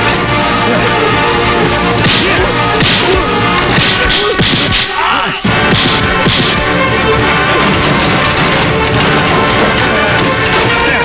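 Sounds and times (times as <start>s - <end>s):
dramatic background music: 0.0s - 11.0s
punch hits: 2.0s - 5.0s, 5.6s - 6.7s.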